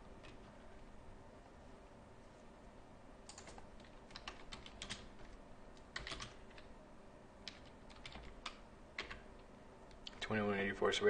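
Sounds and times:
typing on keyboard: 3.3 - 6.7, 7.4 - 9.4.

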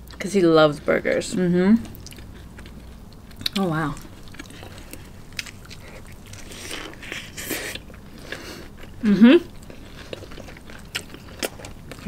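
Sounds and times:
mouth chewing burgers: 1.8 - 12.0.

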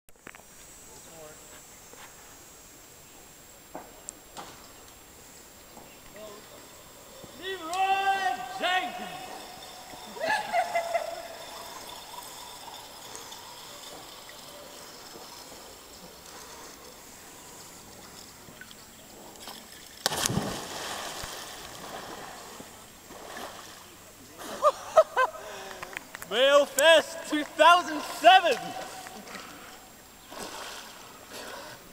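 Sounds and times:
person shouting: 7.4 - 9.5, 26.3 - 29.1
loud splash into water: 20.0 - 22.3.

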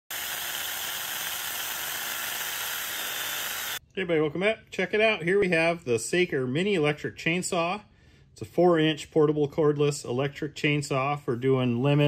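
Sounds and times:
mini chainsaw cutting a branch: 0.1 - 3.8.

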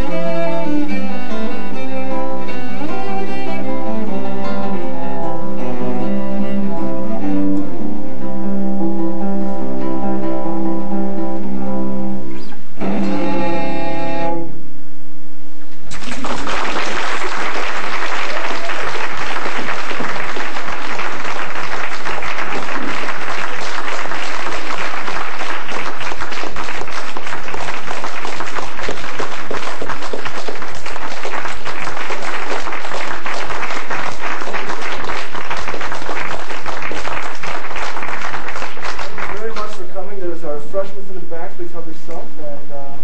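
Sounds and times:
cello and guitar music: 0.0 - 14.6
audience applauding: 15.9 - 40.0.

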